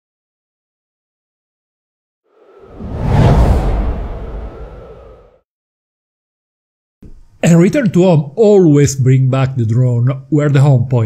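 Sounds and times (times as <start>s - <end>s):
whoosh transition effect: 2.3s - 5.4s
deep rumble: 2.4s - 5.4s.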